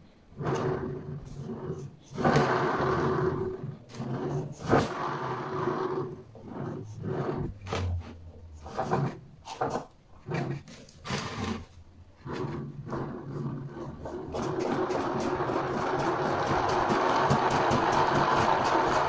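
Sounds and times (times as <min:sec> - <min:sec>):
palm swiping along shaft: 0:00.4 - 0:17.7.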